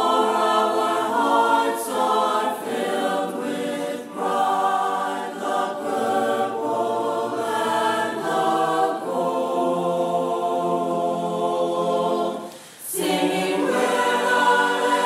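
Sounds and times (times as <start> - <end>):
choir singing sustained chords: 0.0 - 15.0.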